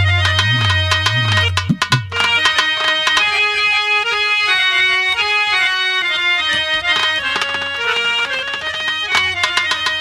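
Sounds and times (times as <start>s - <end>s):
hand drum strokes: 0.0s - 3.5s, 6.6s - 10.0s
held keyboard chord: 0.0s - 10.0s
plucked notes: 0.0s - 10.0s.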